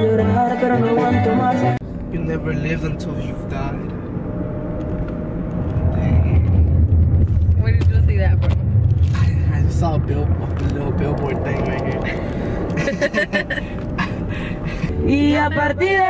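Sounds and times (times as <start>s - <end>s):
engine and road rumble: 0.0s - 16.0s.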